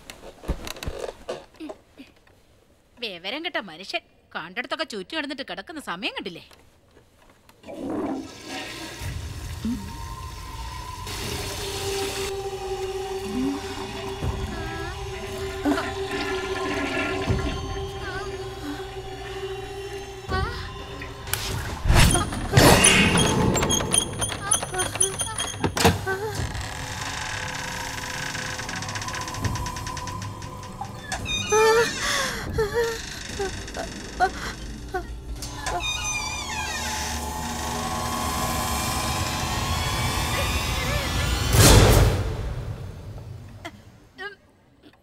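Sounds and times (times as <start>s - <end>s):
low drone: 9.0s - 25.5s
wavering cries: 11.6s - 23.8s.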